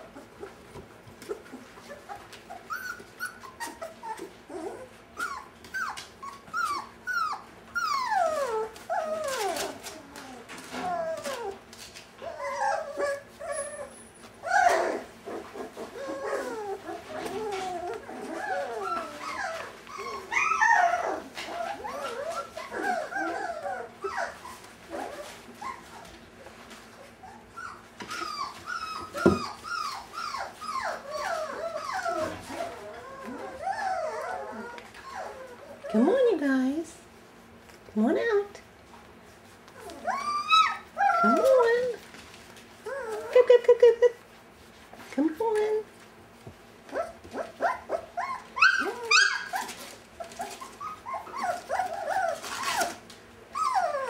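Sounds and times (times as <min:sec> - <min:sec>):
puppies whimpering and yelping: 0:00.0 - 0:36.6, 0:39.3 - 0:44.8, 0:46.7 - 0:54.0.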